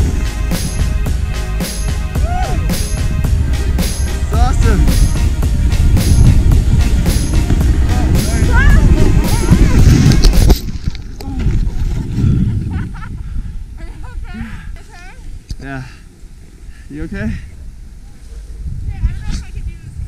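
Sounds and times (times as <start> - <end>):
music with singing voice: 0.0 - 10.5
wind buffeting microphone: 2.2 - 20.0.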